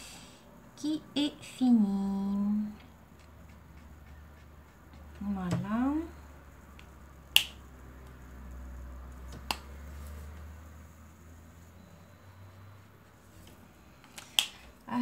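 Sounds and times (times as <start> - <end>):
faint low hum: 0.0 - 15.0.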